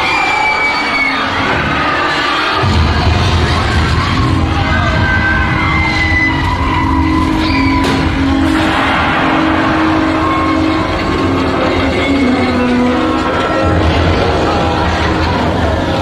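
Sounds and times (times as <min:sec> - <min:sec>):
loud low rumble: 0:02.6 - 0:16.0
screeching squealing tones: 0:03.6 - 0:16.0.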